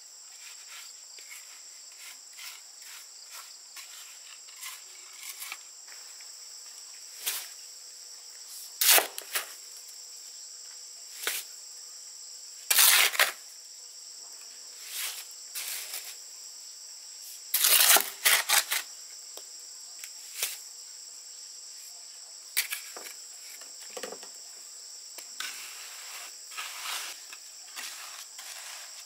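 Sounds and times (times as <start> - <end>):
insects chirring: 0.0 - 29.0.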